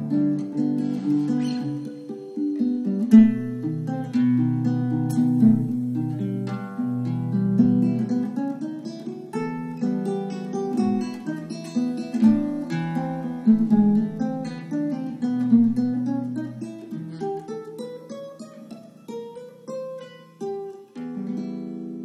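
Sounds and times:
classical guitar fingerstyle waltz: 0:00.0 - 0:22.0.

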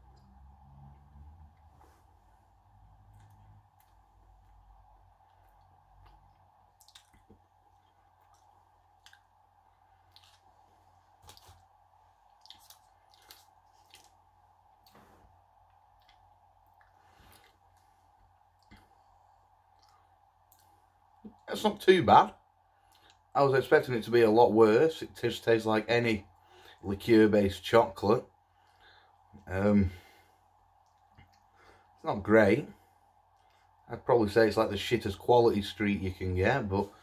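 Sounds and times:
faint hum: 0:00.0 - 0:37.0
mouth clicks of chewing: 0:05.3 - 0:09.3, 0:12.3 - 0:14.2, 0:19.7 - 0:20.7.

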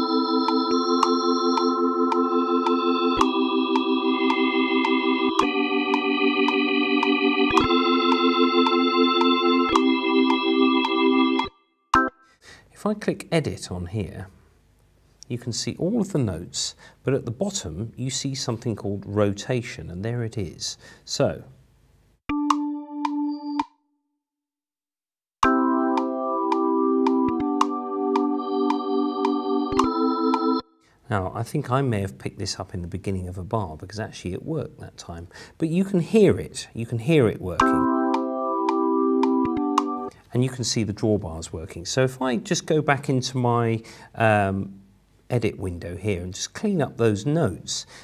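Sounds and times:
organ playing held chords: 0:00.0 - 0:12.2, 0:22.3 - 0:23.6, 0:25.4 - 0:30.6, 0:37.6 - 0:40.2
steady beat of short clicks: 0:00.4 - 0:12.2, 0:22.3 - 0:23.7, 0:25.9 - 0:30.4, 0:37.6 - 0:40.2.

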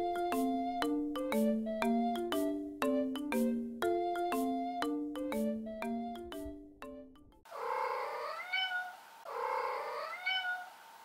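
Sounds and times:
cat meowing: 0:07.6 - 0:10.8.

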